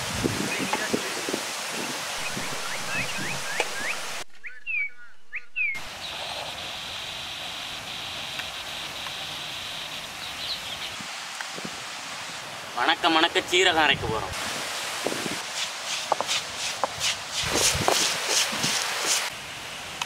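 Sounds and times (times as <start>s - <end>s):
background hiss: 0.0s - 20.0s
steady high-pitched buzz: 2.2s - 4.4s
birds chirping: 2.2s - 7.1s, 10.0s - 11.0s.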